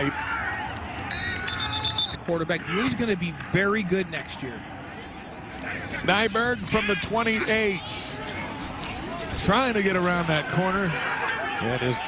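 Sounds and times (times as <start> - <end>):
stadium crowd noise: 0.0 - 12.0
referee's whistle trilling: 1.1 - 2.3.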